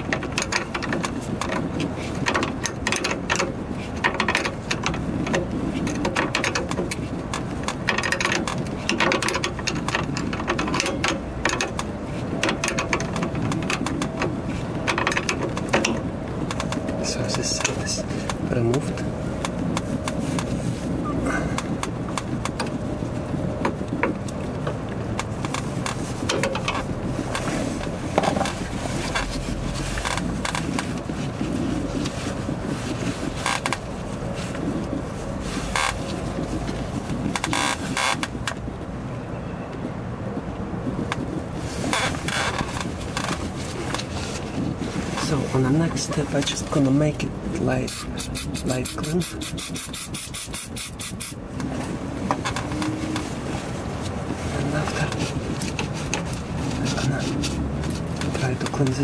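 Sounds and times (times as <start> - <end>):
wrench clicking and scraping metal: 47.9 - 51.4.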